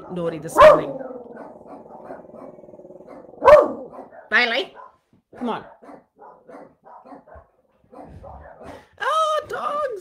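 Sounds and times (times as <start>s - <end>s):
dog barking: 0.0s - 8.9s.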